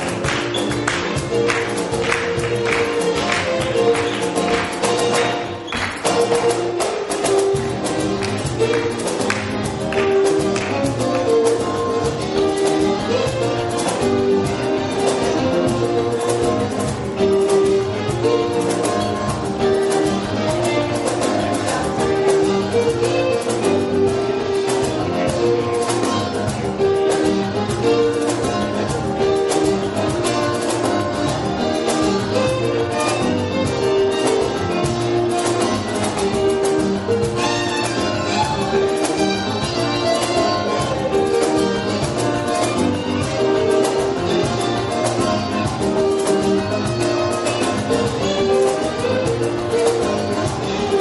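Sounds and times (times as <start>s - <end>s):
acoustic guitar strumming: 0.0s - 51.0s
steady rhythmic beat: 0.0s - 51.0s
violin melody: 0.0s - 51.0s.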